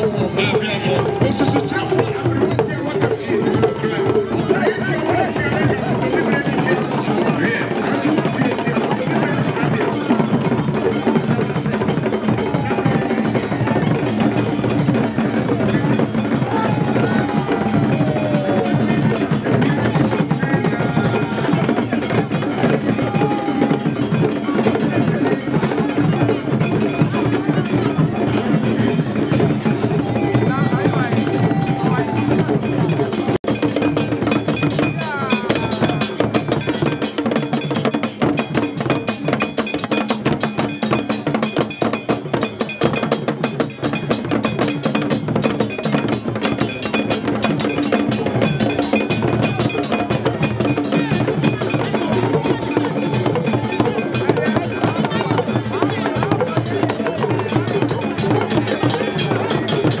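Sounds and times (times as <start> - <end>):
crowd voices: 0.0 - 60.0
drum and percussion music: 0.0 - 60.0.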